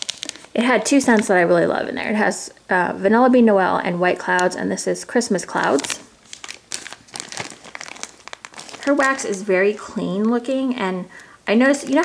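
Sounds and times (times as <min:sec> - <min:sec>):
plastic packaging crinkling: 0:00.0 - 0:01.4, 0:05.6 - 0:10.5, 0:11.7 - 0:12.0.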